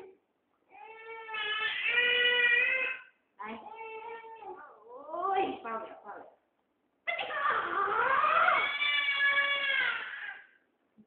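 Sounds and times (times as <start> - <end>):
baby crying: 0.7 - 4.9, 7.1 - 10.6.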